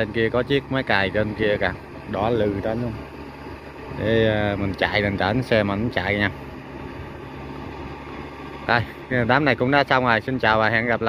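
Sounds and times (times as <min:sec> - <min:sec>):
tractor engine running under load: 0:00.0 - 0:11.0.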